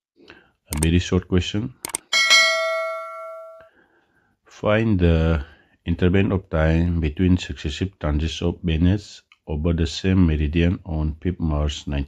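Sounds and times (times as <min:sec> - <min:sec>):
bell-like ding: 0:02.1 - 0:03.7.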